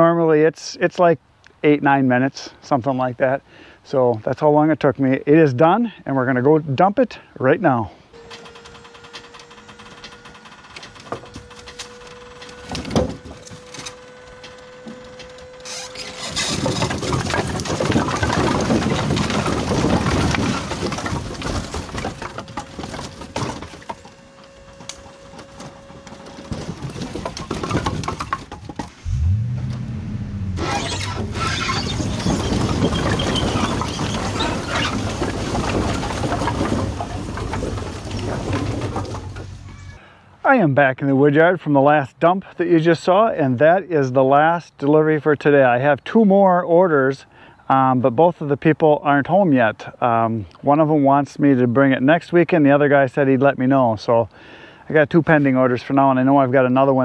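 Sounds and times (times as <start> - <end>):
hydraulic pump whining: 8.1 - 40.0
firewood clattering out: 8.3 - 29.7, 30.6 - 40.0
low hum: 28.9 - 32.7.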